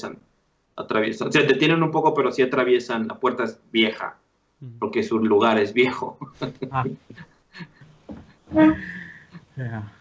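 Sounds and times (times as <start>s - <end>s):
men laughing: 6.2s - 9.6s.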